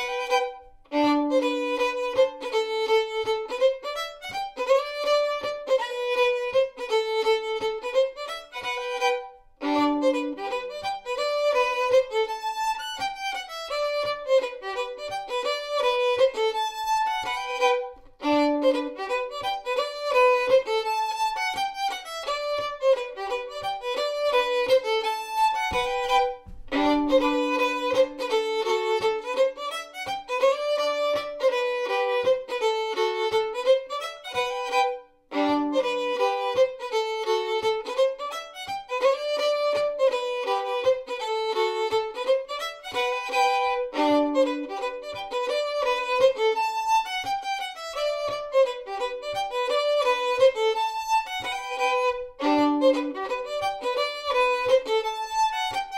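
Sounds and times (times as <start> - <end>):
bowed solo fiddle: 0.0 - 55.9.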